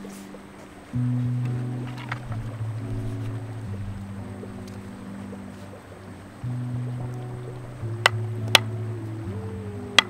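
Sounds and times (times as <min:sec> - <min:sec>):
sustained low background music: 0:00.0 - 0:10.0.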